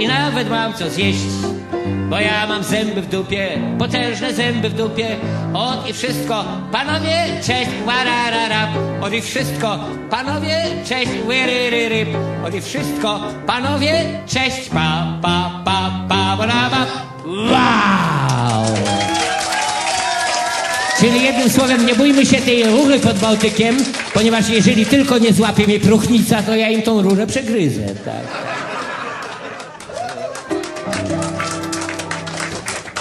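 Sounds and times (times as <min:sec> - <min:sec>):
people clapping: 0:17.5 - 0:33.0
piano chord: 0:30.5 - 0:32.8.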